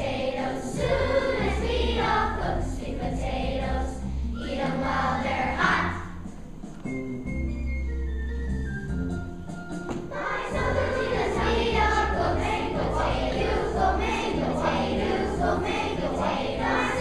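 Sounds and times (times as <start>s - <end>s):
children's choir singing: 0.0s - 6.4s, 9.9s - 17.0s.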